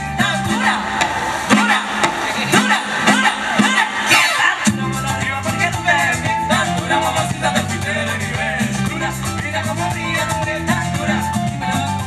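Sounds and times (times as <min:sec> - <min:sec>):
latin band music: 0:00.0 - 0:12.0
sharp drum hit: 0:00.3 - 0:04.9.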